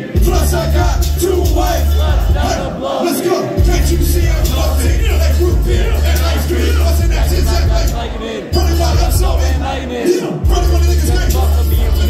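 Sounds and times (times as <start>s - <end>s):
crowd shouting along: 0.0s - 12.0s
hip-hop beat with heavy bass: 0.0s - 12.0s.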